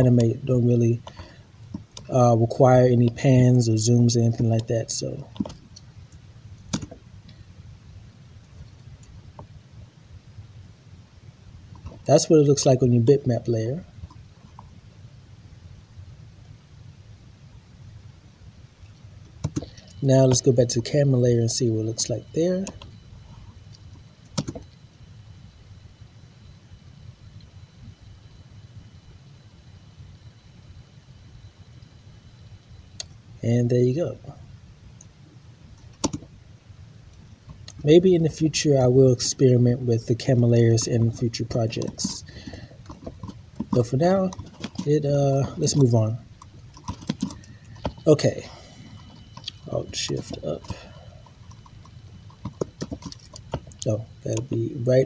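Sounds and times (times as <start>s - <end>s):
low steady hum: 0.0s - 55.0s.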